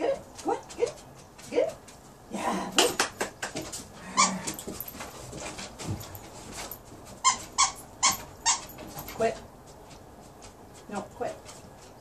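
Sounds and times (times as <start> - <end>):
dog playing tug-of-war: 3.6 - 12.0.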